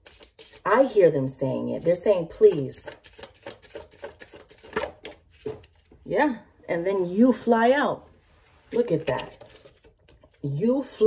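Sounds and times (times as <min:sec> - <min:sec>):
cards shuffled and tapped: 0:00.0 - 0:00.6, 0:02.4 - 0:05.9, 0:08.9 - 0:10.4.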